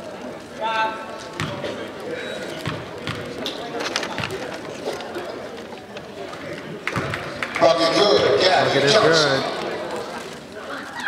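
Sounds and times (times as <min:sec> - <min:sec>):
crowd chatter: 0:00.0 - 0:11.0
basketball bouncing on wooden floor: 0:01.4 - 0:01.6, 0:02.6 - 0:03.4.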